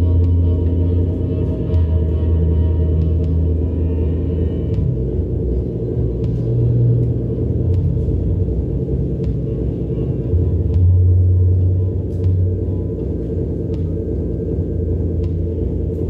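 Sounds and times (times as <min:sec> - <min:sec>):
low electronic drone music: 0:00.0 - 0:16.0.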